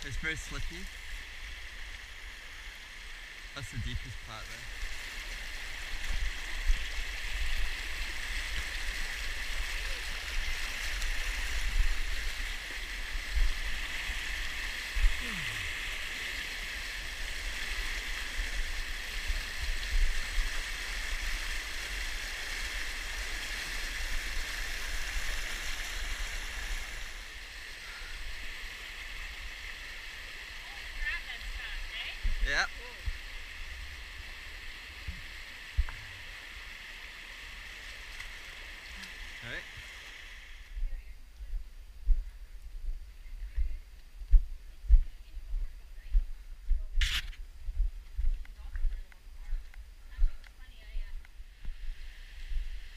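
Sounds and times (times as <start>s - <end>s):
river water rushing over boulders: 0.0s - 40.8s.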